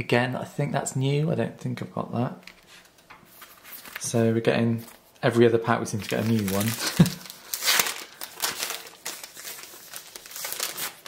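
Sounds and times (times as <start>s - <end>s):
wrapper crinkling and tearing: 3.3s - 4.2s, 5.9s - 11.0s.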